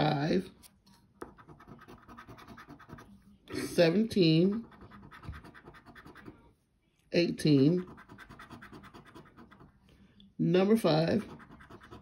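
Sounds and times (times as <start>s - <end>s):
coin scraping scratch card: 1.2s - 3.1s, 3.7s - 6.4s, 7.8s - 9.7s, 11.2s - 12.0s.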